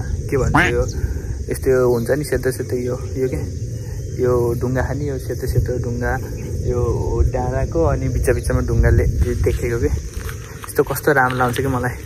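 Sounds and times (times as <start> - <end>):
wind rumble on microphone: 0.0 - 12.0
man talking: 0.3 - 1.0.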